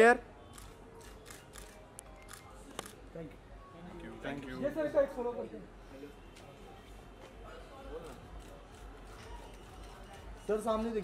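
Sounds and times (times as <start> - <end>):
faint background music: 0.0 - 11.0
camera shutter clicks: 0.5 - 3.0.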